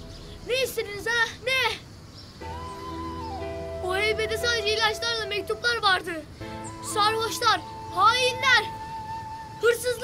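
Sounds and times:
background music steady note: 0:00.0 - 0:01.1, 0:02.2 - 0:10.0.

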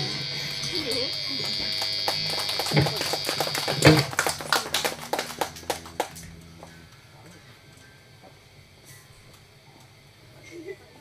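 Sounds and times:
audience voices: 0:00.0 - 0:07.6
audience clapping: 0:00.6 - 0:06.7.

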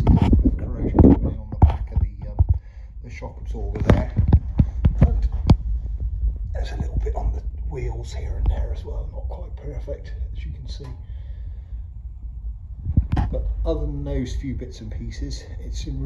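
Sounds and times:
man talking: 0:00.0 - 0:05.6, 0:06.5 - 0:11.1, 0:13.2 - 0:16.0
low rumble: 0:00.0 - 0:16.0.

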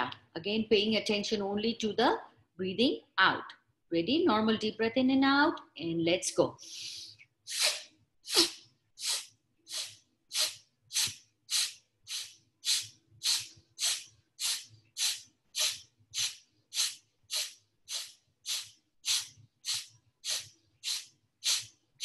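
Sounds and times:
woman breathing forcefully through nose: 0:09.0 - 0:21.7.

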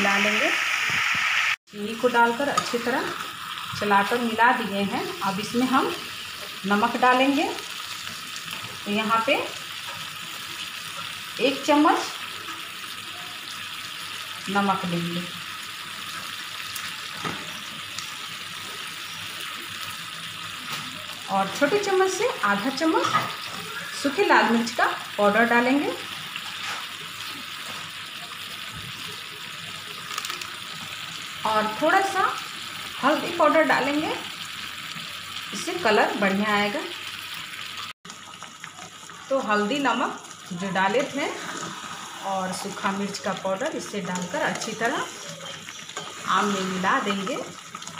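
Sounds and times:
frying hiss: 0:00.0 - 0:47.9.

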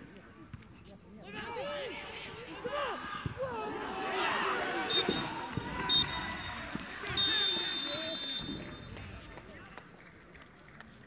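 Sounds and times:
players shouting: 0:01.2 - 0:08.9
referee's whistle blasts: 0:04.8 - 0:09.1.

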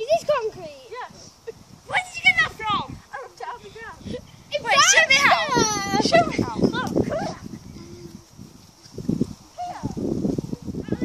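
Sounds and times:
girls talking excitedly: 0:00.0 - 0:11.0.

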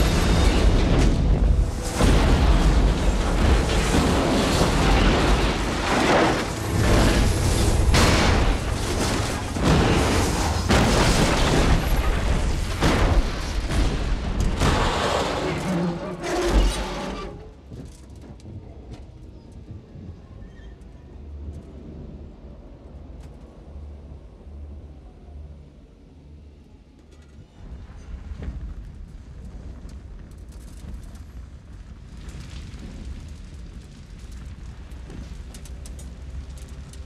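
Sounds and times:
fire crackling: 0:00.0 - 0:16.1, 0:27.6 - 0:37.0
metallic clicks and creaks: 0:35.0 - 0:37.0.

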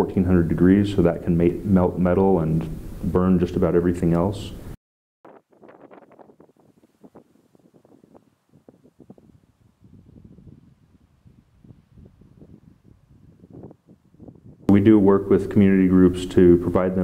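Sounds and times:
wind buffeting microphone: 0:05.3 - 0:17.0.

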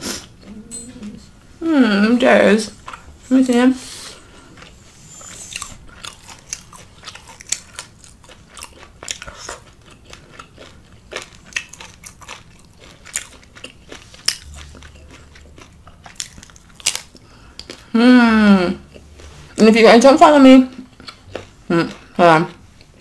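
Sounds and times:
person chewing taco: 0:02.8 - 0:03.2, 0:03.9 - 0:18.0, 0:18.8 - 0:19.6, 0:20.7 - 0:23.0.

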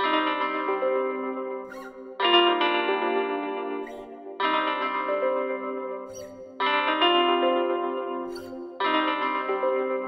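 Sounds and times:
guitar melody: 0:00.0 - 0:10.0.

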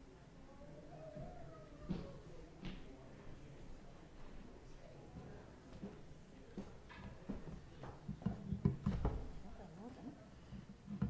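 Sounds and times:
soft knocks and bumps: 0:06.6 - 0:09.4.

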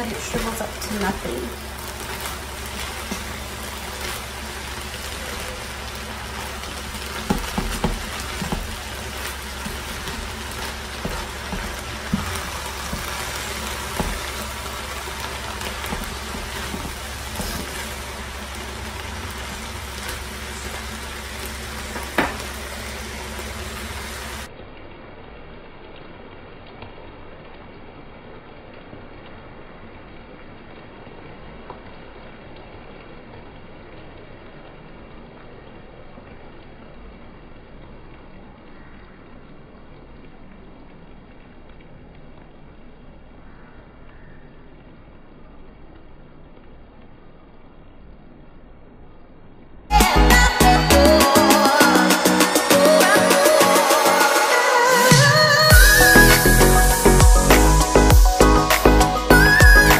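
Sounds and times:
cabbage frying in a skillet: 0:00.0 - 0:24.5, 0:55.7 - 0:59.9.

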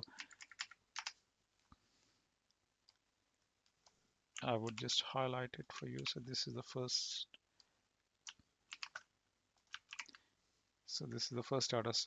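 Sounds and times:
computer keyboard typing: 0:00.0 - 0:01.2, 0:08.2 - 0:10.2.

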